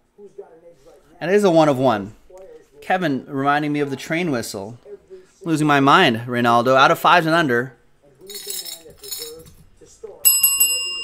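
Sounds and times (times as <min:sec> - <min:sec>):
metal service bell ringing: 0:10.2 - 0:11.0.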